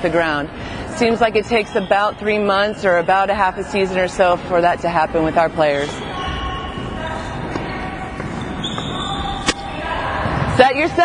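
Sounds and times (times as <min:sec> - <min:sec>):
players' voices in gym: 0:00.0 - 0:11.0.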